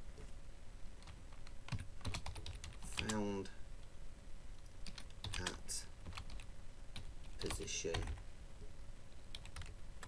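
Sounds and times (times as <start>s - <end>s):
computer keyboard typing: 1.0s - 3.2s, 4.8s - 8.2s, 9.3s - 9.8s.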